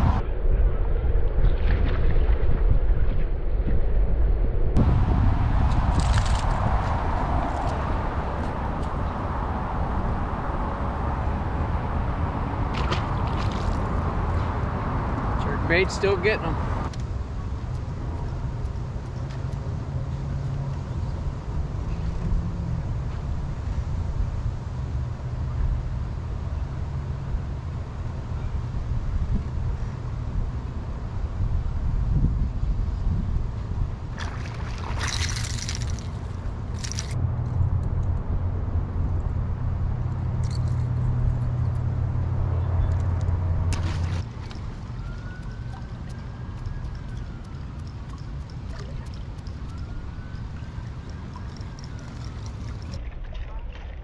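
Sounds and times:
low rumble: 0:00.0 - 0:15.7, 0:27.4 - 0:54.0
fish splashing at surface: 0:12.7 - 0:14.1, 0:34.2 - 0:37.1, 0:43.7 - 0:44.8.

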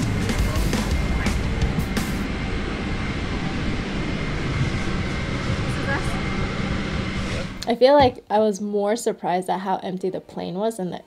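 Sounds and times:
airliner cabin noise: 0:00.0 - 0:08.2.

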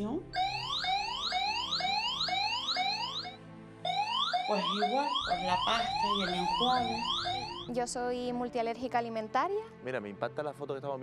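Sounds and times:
rising electronic alarm chirp: 0:00.3 - 0:07.8.

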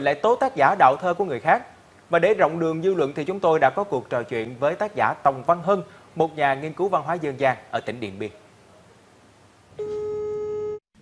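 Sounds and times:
telephone ringback tone: 0:09.8 - 0:10.8.

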